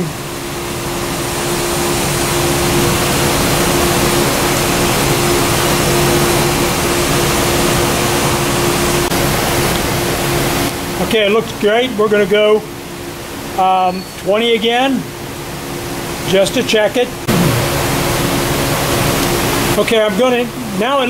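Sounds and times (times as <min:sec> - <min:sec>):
valve actuator motor humming: 0:17.3 - 0:18.0.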